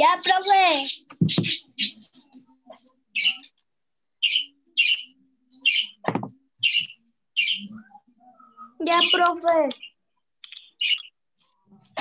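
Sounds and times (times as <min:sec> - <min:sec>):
small bird chirping: 0:03.1 - 0:06.0, 0:06.6 - 0:11.5.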